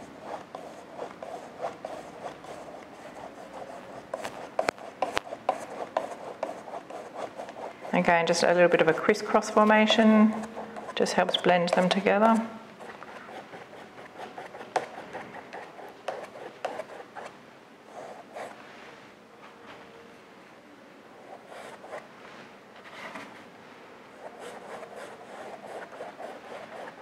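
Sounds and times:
paintbrush scratching on canvas: 0.0 - 17.3, 21.2 - 22.0, 24.2 - 27.0.

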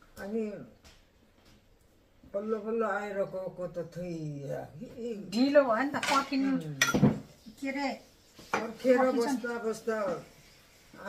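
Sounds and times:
ceramic plates clinking: 6.0 - 7.3
people talking: 8.6 - 10.2.

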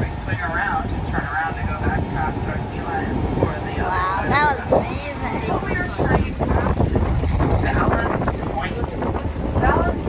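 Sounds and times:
boat engine low rumble: 0.0 - 10.0
wind buffeting microphone: 0.0 - 10.0.

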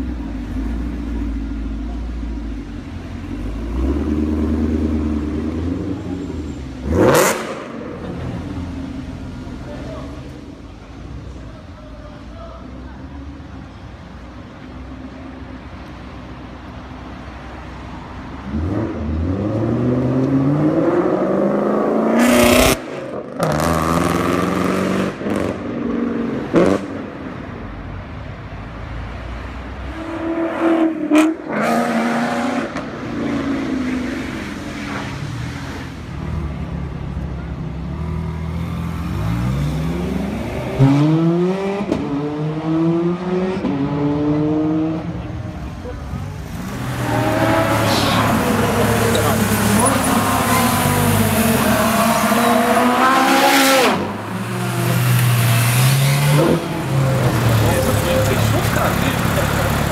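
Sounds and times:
car engine revving hard: 6.8 - 7.7, 46.8 - 59.9.

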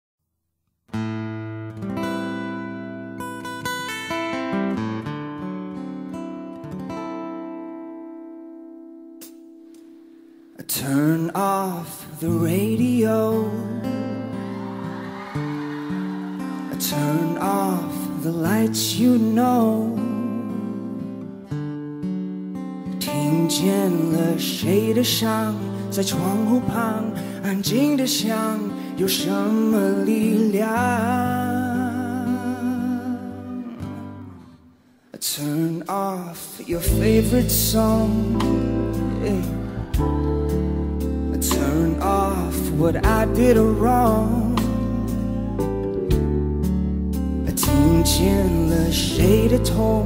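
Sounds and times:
acoustic guitar melody: 0.9 - 50.0
person singing: 10.6 - 21.2, 23.0 - 34.6, 35.2 - 46.4, 47.4 - 50.0.

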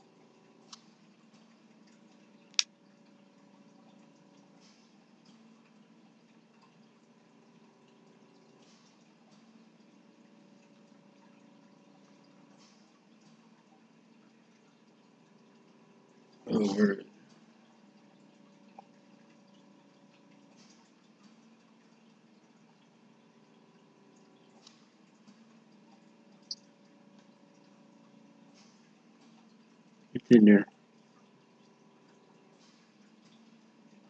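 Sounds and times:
faint steady hum: 0.0 - 34.0.

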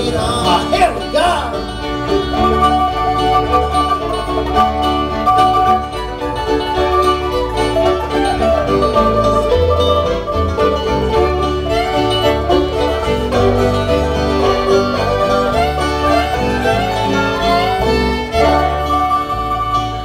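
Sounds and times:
acoustic guitar: 0.0 - 20.0
banjo: 0.0 - 20.0
fiddle: 0.0 - 20.0
mandolin: 0.0 - 20.0
upright bass: 0.0 - 20.0.

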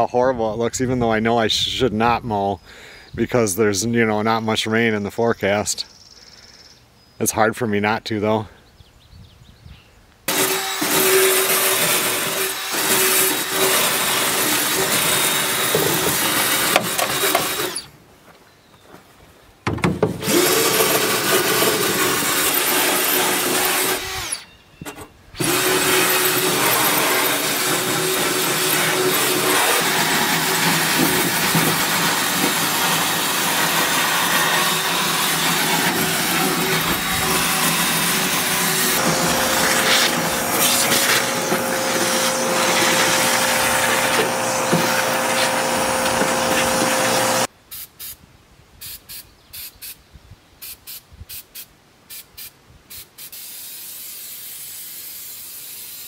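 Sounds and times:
cordless drill on aluminum: 10.3 - 18.0, 19.8 - 47.5
vacuum cleaner motor hum: 25.4 - 47.5.

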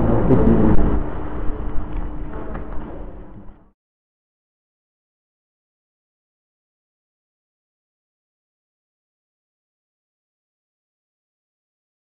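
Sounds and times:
man's voice: 0.0 - 0.9
low rumbling background noise: 0.0 - 3.8
steady hum: 0.0 - 3.8.

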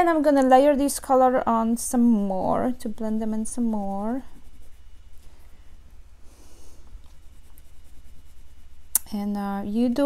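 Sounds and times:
oil pastel scratching on paper: 2.0 - 5.7, 6.4 - 10.0.

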